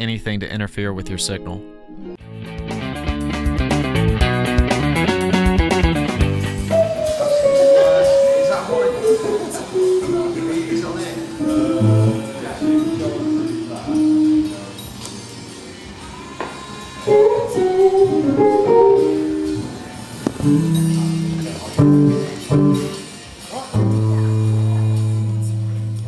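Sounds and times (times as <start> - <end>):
guitar music with sliding notes: 1.2 - 15.4, 17.0 - 26.0.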